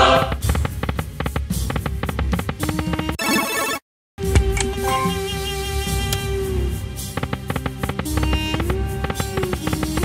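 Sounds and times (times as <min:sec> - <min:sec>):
slot machine spin tune: 0:03.1 - 0:03.8, 0:04.8 - 0:05.4.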